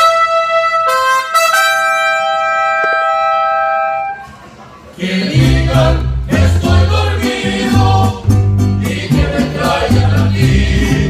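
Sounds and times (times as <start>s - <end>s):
trumpets holding a note in harmony: 0.0s - 4.3s
mariachi band playing: 0.0s - 11.0s.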